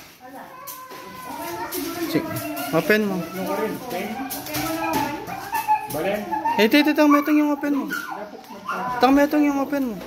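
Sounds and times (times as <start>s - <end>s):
people talking: 0.2s - 10.0s.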